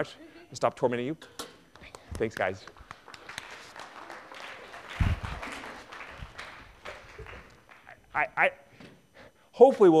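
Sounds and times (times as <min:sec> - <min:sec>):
audience applauding: 0:02.7 - 0:07.9.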